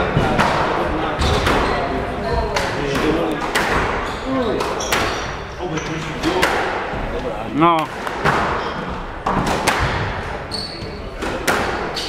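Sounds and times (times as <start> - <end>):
background chatter: 0.0 - 12.0
squash ball cracks: 2.6 - 4.0, 9.2 - 10.2, 11.2 - 12.0.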